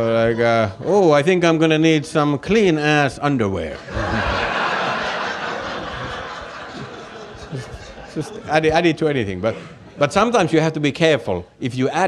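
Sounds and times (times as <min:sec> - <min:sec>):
audience laughing: 0:03.7 - 0:10.1.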